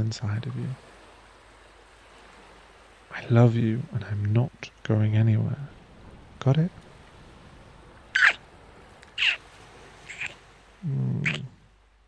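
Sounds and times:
mouth smacks: 8.2 - 8.4, 9.0 - 9.4, 10.1 - 11.6
man humming low: 10.8 - 11.6.

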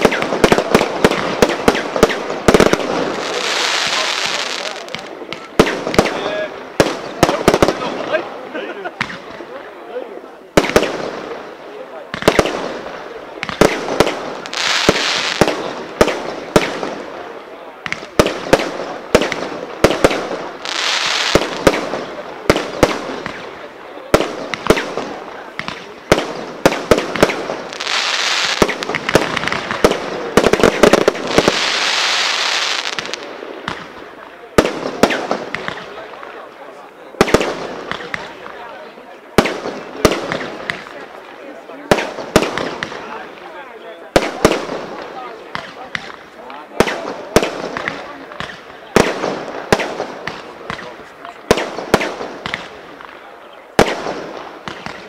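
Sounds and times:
firework crackling: 0.0 - 9.5, 10.5 - 36.5, 37.2 - 55.0.

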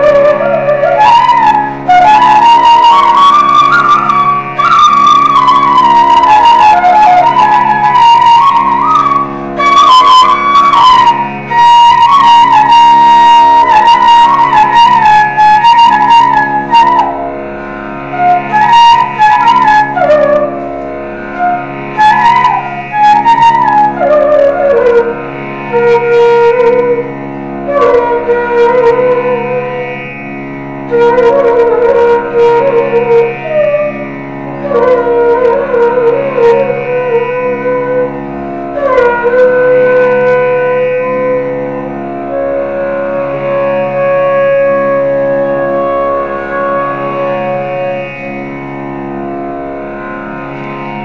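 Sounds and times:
flute melody: 0.0 - 30.2, 30.8 - 48.4
steady drone: 0.0 - 44.2.

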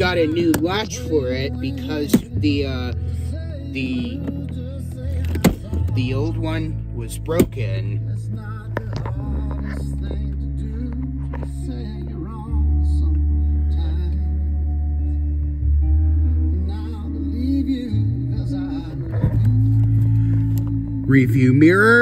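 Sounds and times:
slow song with singer: 0.0 - 22.0.

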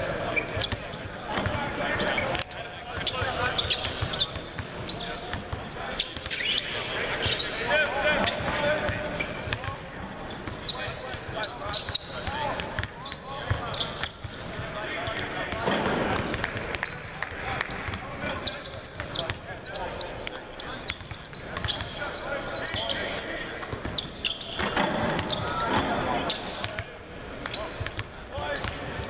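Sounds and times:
people talking: 0.0 - 29.0.

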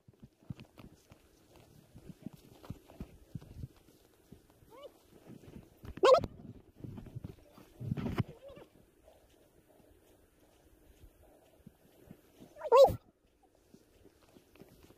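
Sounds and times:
animal calls: 12.6 - 13.0.

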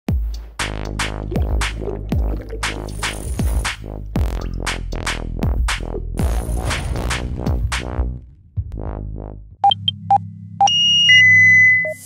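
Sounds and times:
low electronic hum: 5.4 - 12.0
long high beep stepping down: 9.6 - 12.0
short synth beeps: 9.6 - 12.0.

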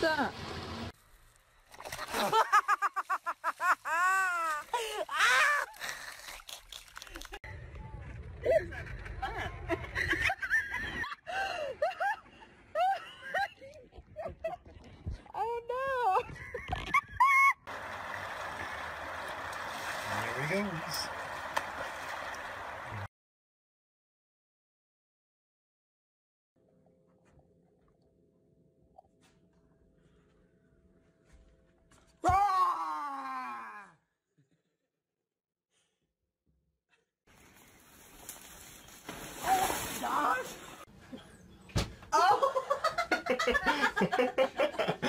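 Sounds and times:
river water flowing: 17.7 - 23.1.

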